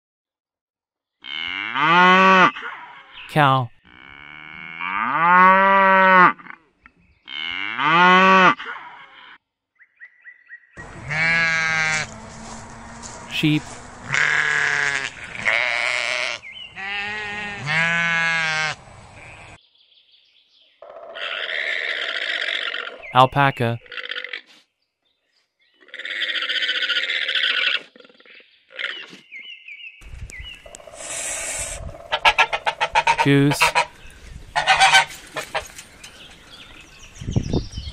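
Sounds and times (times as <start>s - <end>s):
cow mooing: 1.2s - 2.5s, 3.9s - 6.6s, 7.3s - 8.8s, 10.8s - 19.5s
alpaca rasping call: 10.8s - 19.6s, 25.8s - 27.9s, 30.7s - 34.0s, 34.6s - 35.7s.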